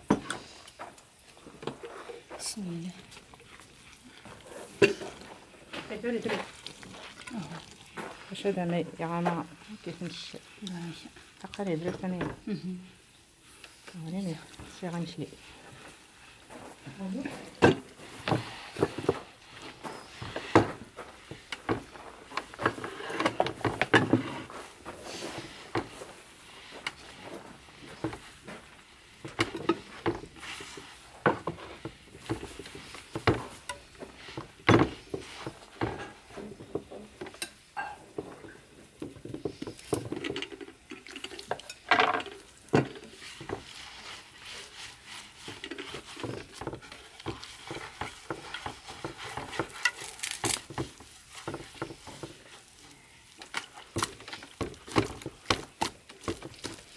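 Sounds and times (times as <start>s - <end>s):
hands kneading dough in clay dish: 42.4s - 56.9s.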